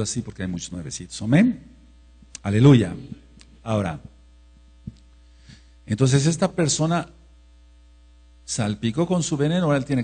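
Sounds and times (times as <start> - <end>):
man talking: 0.0 - 1.8, 2.4 - 4.2, 5.9 - 7.2, 8.5 - 10.0
electrical mains hum: 0.0 - 10.0.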